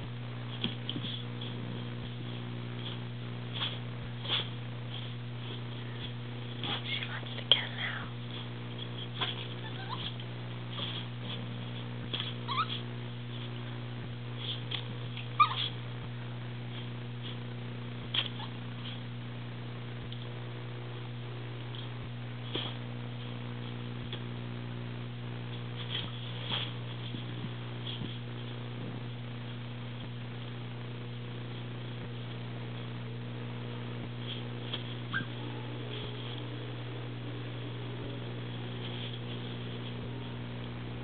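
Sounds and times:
electrical hum: 0.0s - 41.0s
dog whimper: 9.2s - 10.2s, 12.5s - 12.8s, 15.4s - 15.8s.

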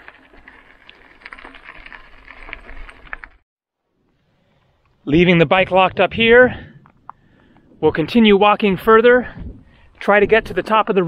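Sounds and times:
bike rattling over gravel: 0.0s - 3.4s.

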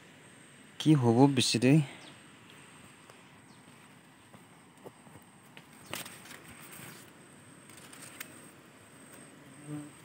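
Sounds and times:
insects buzzing: 0.0s - 10.0s.

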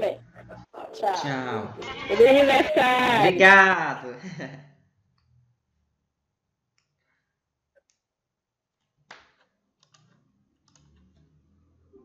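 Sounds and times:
computer mouse clicking: 9.8s - 11.3s.

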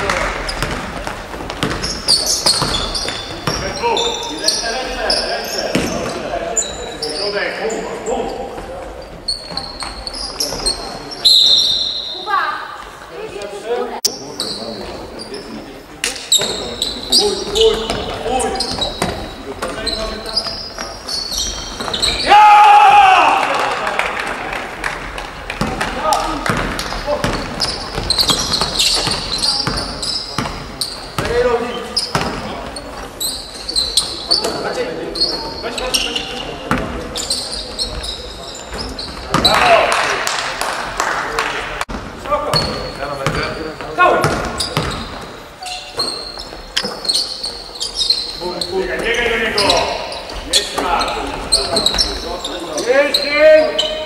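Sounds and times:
ball bouncing on wooden court: 0.0s - 3.8s, 5.6s - 6.2s, 17.5s - 22.2s, 25.2s - 31.4s, 32.0s - 32.6s, 38.7s - 39.7s, 41.9s - 43.6s, 44.2s - 45.3s
sneakers squeaking: 0.0s - 40.5s, 41.9s - 54.0s
players calling out: 1.5s - 40.5s, 42.4s - 54.0s
loud shout: 22.2s - 24.2s.

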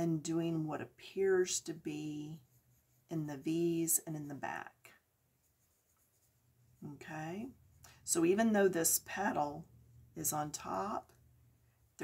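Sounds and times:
pencil scratching on paper: 1.4s - 3.8s, 5.4s - 8.4s.

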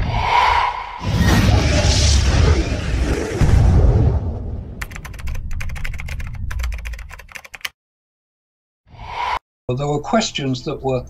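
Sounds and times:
low rumble of boom: 0.0s - 4.8s
rapid keyboard typing clicks: 4.8s - 7.7s.

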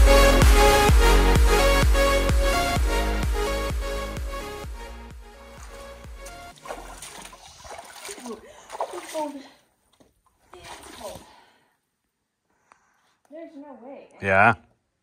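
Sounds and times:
background music: 0.0s - 7.3s
feet splashing in water: 5.4s - 11.5s.

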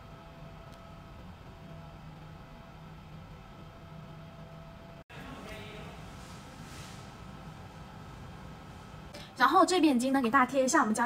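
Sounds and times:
low hum: 0.0s - 9.4s.

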